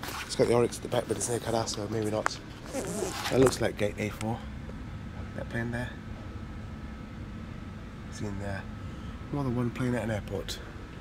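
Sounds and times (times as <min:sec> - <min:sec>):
indoor hum and hiss: 0:00.0 - 0:11.0.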